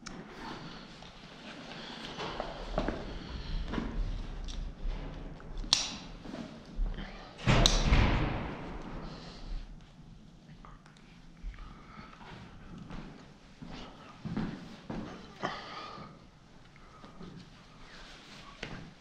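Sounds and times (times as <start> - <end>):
loud thump with rattle: 7.5 - 9.2.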